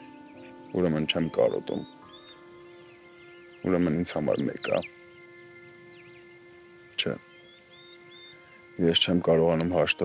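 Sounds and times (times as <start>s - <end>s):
bird chirps: 0.0s - 10.0s
sustained background music tones: 0.0s - 10.0s.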